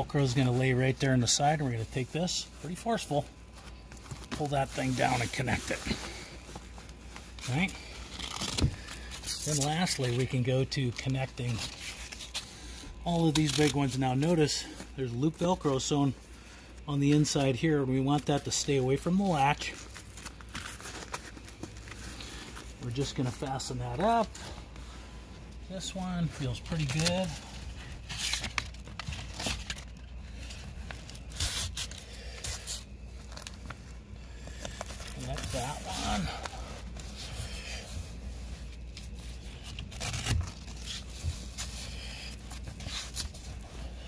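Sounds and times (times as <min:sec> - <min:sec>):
fabric rustling: 0:00.2 - 0:12.4
velcro straps ripping: 0:07.3 - 0:10.3, 0:30.8 - 0:33.8, 0:38.8 - 0:43.6.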